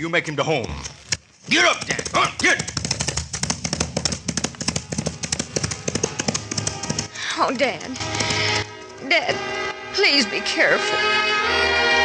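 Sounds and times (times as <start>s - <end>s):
horse hoofbeats galloping: 1.5s - 8.8s.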